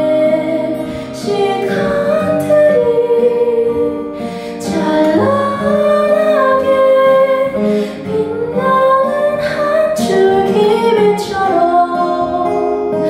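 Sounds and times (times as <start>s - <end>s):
acoustic guitar: 0.0s - 13.0s
woman singing slow ballad: 0.0s - 13.0s.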